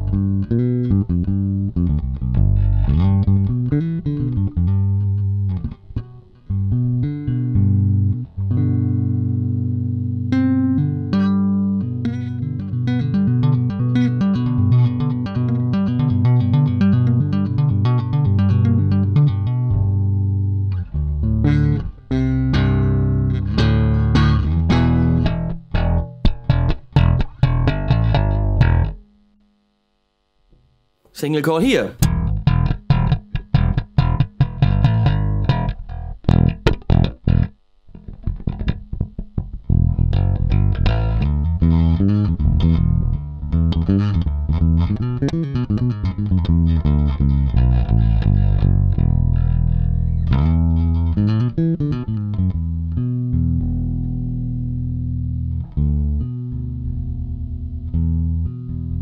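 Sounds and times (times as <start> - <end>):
electric bass played fingerstyle: 0.0 - 29.4, 31.8 - 59.0.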